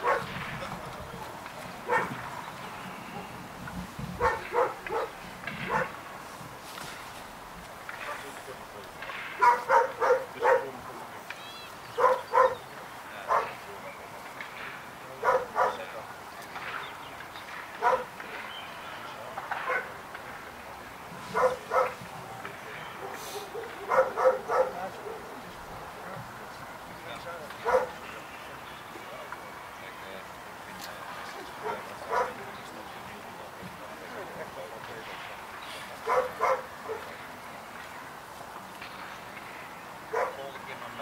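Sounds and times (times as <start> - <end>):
dog barking: 0.0 - 0.3, 1.8 - 2.2, 4.2 - 6.0, 9.4 - 10.7, 12.0 - 12.6, 13.2 - 13.6, 15.2 - 15.9, 17.8 - 18.1, 19.6 - 20.0, 21.3 - 22.0, 22.9 - 25.4, 27.6 - 28.0, 31.6 - 32.4, 36.0 - 37.2, 40.1 - 40.5.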